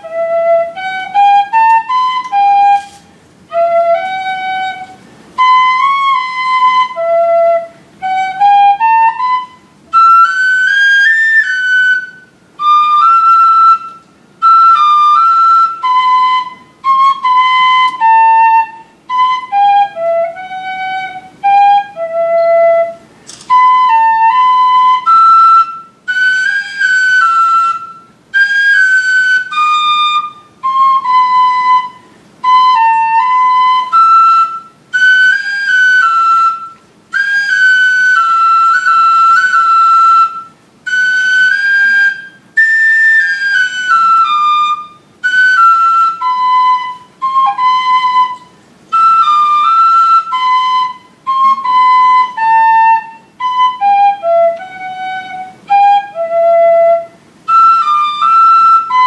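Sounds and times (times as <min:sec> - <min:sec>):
tin whistle melody: 0:00.0 - 0:59.0.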